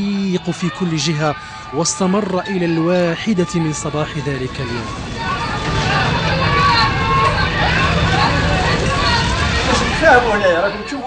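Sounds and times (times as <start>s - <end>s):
indistinct voices talking: 0.0s - 11.0s
steady low rumble: 3.2s - 10.8s.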